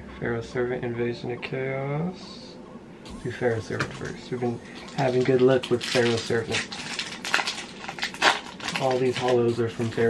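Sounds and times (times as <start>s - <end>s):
loud foil crackles: 3.1s - 10.0s
foil wrapper crinkling: 3.8s - 10.0s.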